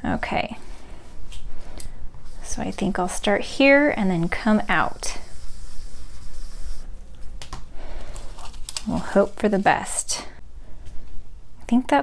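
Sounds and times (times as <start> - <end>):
brush rubbing on card: 2.2 - 6.9, 8.2 - 10.1
paper rustling: 8.0 - 9.9.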